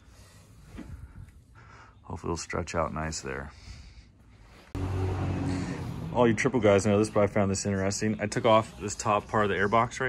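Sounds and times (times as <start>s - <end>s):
race car engines droning: 4.8s - 9.6s.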